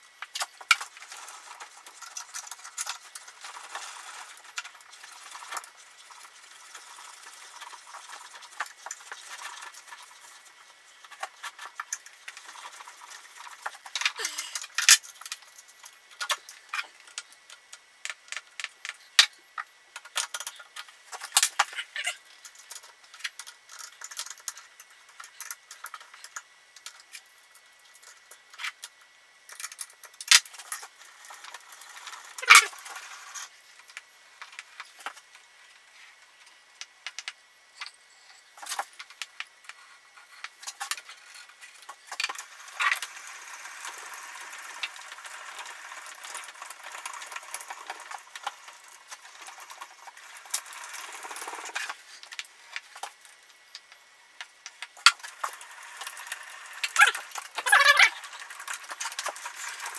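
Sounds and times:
small metallic clicks and rattles: 0.1 - 35.4, 38.6 - 59.9.

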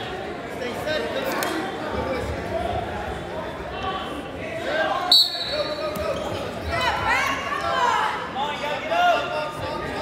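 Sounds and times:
spectators talking and calling out: 0.0 - 10.0
referee's whistle blast: 5.1 - 5.8.

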